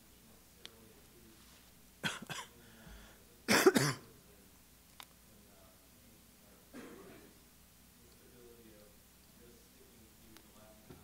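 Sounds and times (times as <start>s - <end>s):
person coughing: 2.0s - 2.6s, 3.5s - 4.1s, 6.8s - 7.3s.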